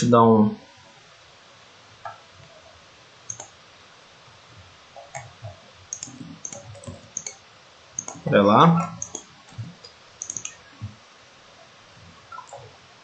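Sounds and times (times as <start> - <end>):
computer mouse clicking: 3.3 - 3.6, 5.0 - 7.4, 8.0 - 8.3, 9.0 - 10.6.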